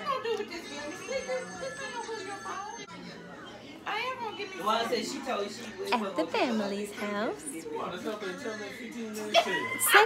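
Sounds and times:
indistinct chatter: 0.0 - 10.0.

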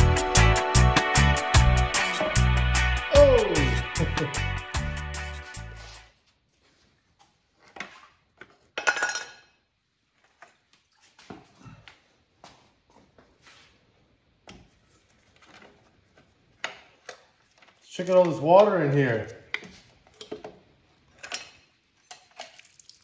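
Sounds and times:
background music: 0.0 - 6.0.

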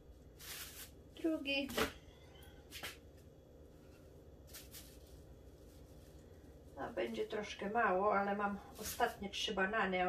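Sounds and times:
low room hum: 0.0 - 10.0
banana peeling rustles: 0.2 - 2.0, 4.4 - 7.2.

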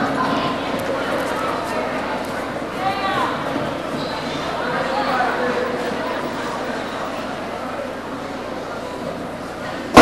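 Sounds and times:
audience chatter in a hall: 0.0 - 10.0.

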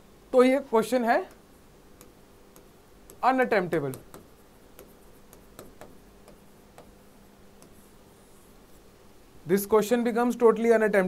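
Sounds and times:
stylus tapping on glass: 3.9 - 7.0.

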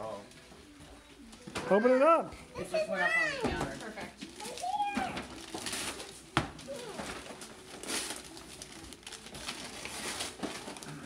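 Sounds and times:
wrapping paper tearing: 3.8 - 11.0.

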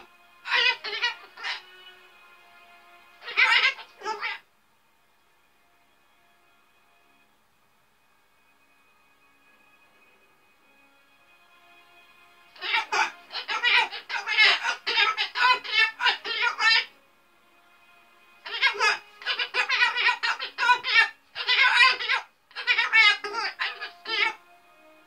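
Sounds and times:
faint television music: 0.0 - 25.0
cockatoo raspy call: 0.5 - 1.7, 3.2 - 4.4, 12.6 - 17.0, 18.4 - 24.4.

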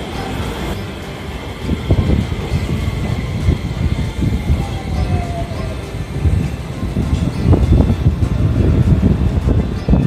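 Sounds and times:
background music: 0.0 - 10.0
electric train rumbling: 0.0 - 10.0.

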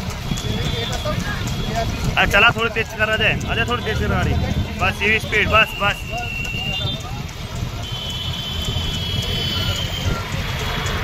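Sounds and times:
motorcycle engines rumbling: 0.0 - 11.0.

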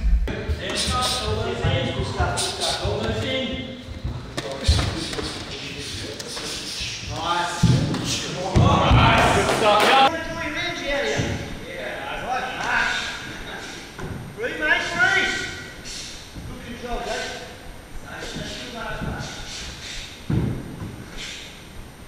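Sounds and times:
voices in room: 0.2 - 22.0
bare feet on wooden floor: 0.6 - 5.6.

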